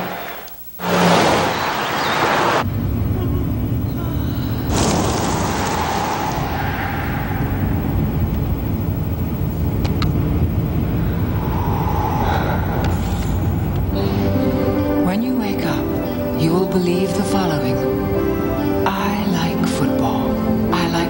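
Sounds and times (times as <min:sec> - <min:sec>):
rushing whoosh: 0:04.7 - 0:09.3, 0:10.5 - 0:14.7
car engine and road noise: 0:06.4 - 0:15.0.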